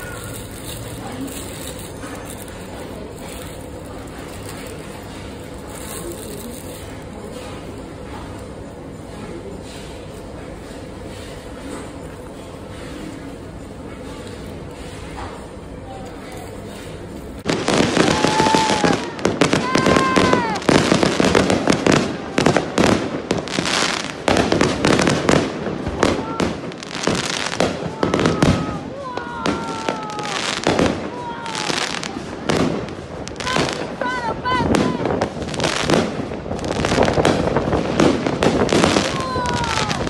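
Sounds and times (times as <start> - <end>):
fireworks bangs and crackles: 0.0 - 40.0.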